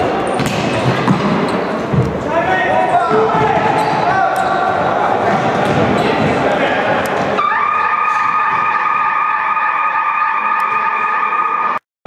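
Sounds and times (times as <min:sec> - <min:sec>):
voices in sports hall: 0:00.0 - 0:11.8.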